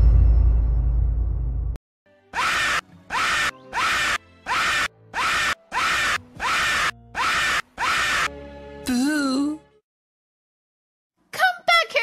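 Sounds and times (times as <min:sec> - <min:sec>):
stuttering looped scream: 0:02.4 - 0:08.3.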